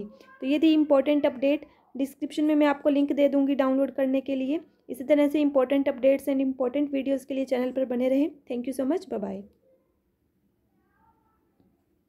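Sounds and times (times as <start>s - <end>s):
faint pitched call: 10.8s - 11.6s.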